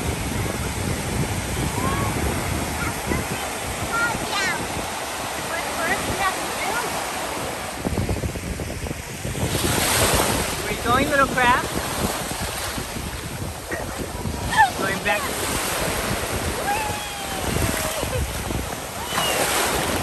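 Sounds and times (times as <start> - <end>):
small waves breaking on beach: 0.0 - 20.0
wind buffeting microphone: 0.0 - 20.0.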